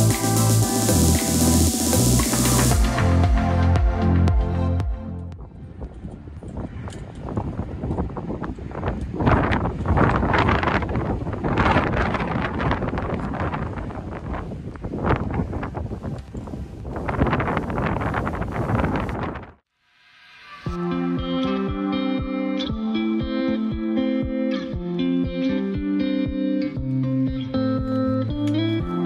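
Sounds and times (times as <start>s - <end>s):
wind gusting against microphone: 5.4s - 19.6s.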